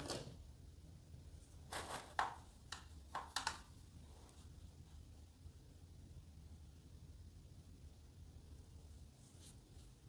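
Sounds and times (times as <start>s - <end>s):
faint low hum: 0.0s - 10.0s
brush strokes in plastic palette: 8.8s - 10.0s.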